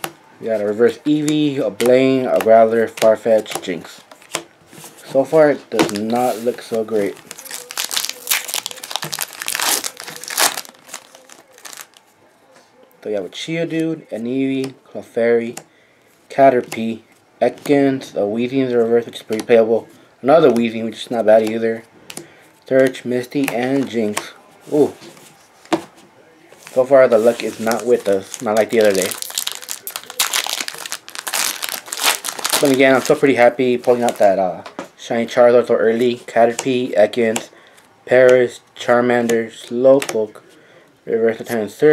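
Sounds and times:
foil wrapper crinkling: 5.8 - 12.1, 26.6 - 34.4.

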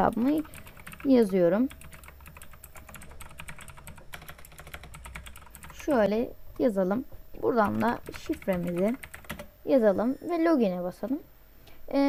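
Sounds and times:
computer keyboard typing: 0.0 - 6.0, 7.5 - 9.5.

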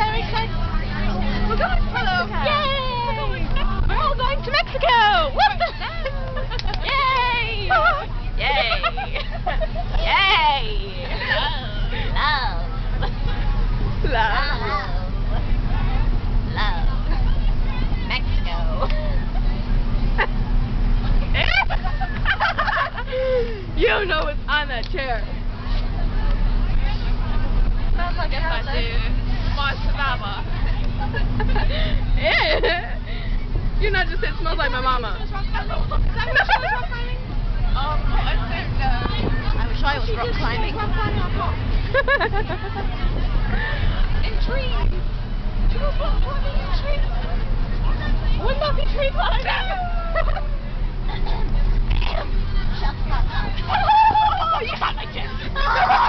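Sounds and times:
bus engine and road noise: 0.0 - 56.0
girls chatting and laughing: 0.0 - 56.0
passengers talking: 0.0 - 56.0
high-pitched laughter: 55.6 - 56.0.

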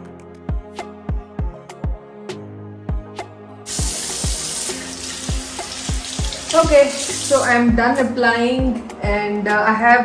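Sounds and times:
water tap running into sink: 3.7 - 7.7.

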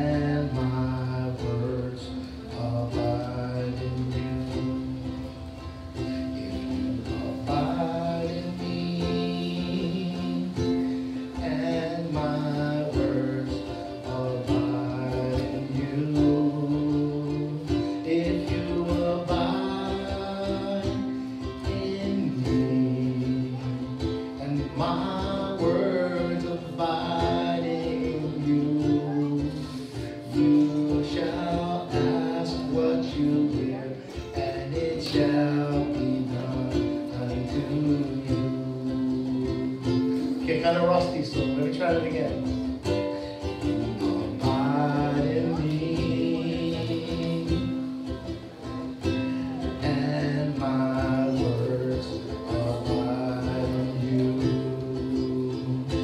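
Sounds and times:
man singing: 0.0 - 56.0
strummed ukulele: 0.0 - 56.0.

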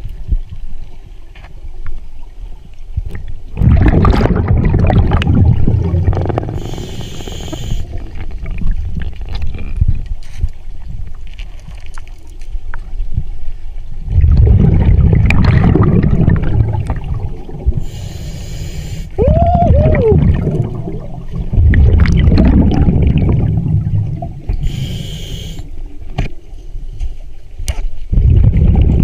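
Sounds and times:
diver breathing through regulator: 6.1 - 8.0, 17.8 - 19.2, 24.5 - 25.7.

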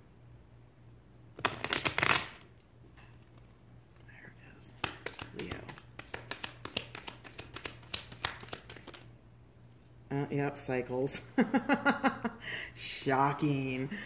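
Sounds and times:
cards riffled together: 1.4 - 2.5, 4.7 - 9.1
overhand card shuffling slaps: 1.4 - 2.5, 4.6 - 9.1.

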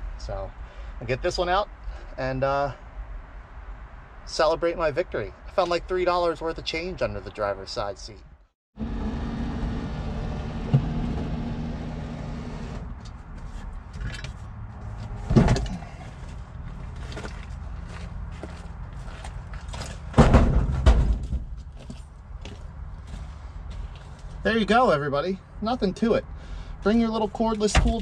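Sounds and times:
knocks and clunks: 13.9 - 16.3, 19.7 - 21.9, 27.6 - 28.0.

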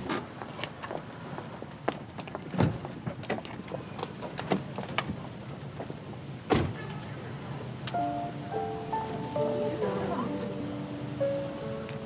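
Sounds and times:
car door slamming: 6.5 - 6.8.

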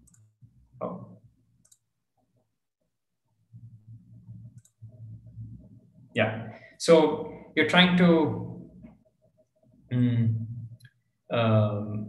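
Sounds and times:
faint computer mouse clicks: 0.0 - 0.3, 1.6 - 1.9, 4.4 - 4.9.

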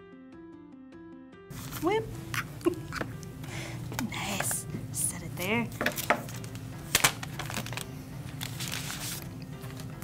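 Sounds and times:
soft background music: 0.0 - 10.0
packaging rustling: 5.8 - 10.0.

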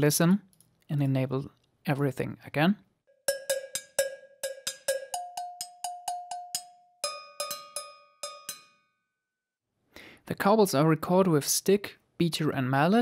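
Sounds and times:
cowbells struck rhythmically: 3.2 - 9.1.

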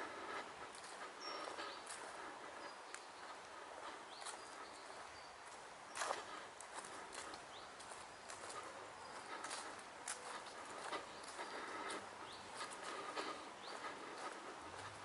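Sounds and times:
footsteps on grass and leaves: 0.0 - 15.0.

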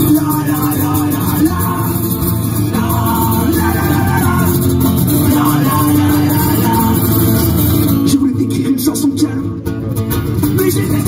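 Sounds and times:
acoustic guitars strummed hard: 0.0 - 11.0
drums: 0.0 - 11.0.

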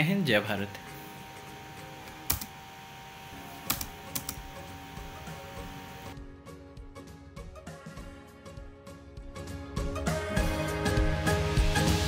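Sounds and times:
background music: 0.0 - 12.0
sharp clicks: 2.1 - 2.5, 3.6 - 4.5.

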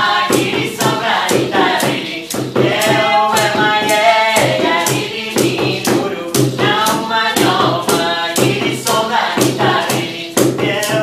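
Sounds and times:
hand percussion strokes: 0.0 - 11.0
woman and man singing: 0.0 - 11.0.

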